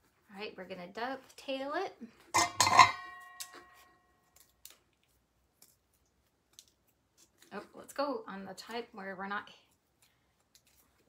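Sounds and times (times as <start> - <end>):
metallic ring: 2.4 - 3.9.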